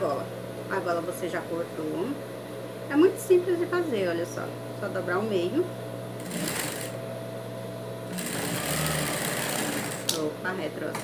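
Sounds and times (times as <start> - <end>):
sewing machine stitching: 6.2 - 6.9, 8.1 - 10.2.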